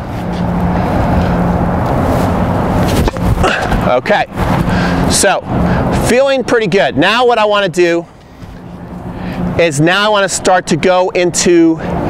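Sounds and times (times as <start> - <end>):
loud rushing background noise: 0.0 - 12.0
low hum: 0.0 - 12.0
racket hitting tennis ball: 1.8 - 4.7.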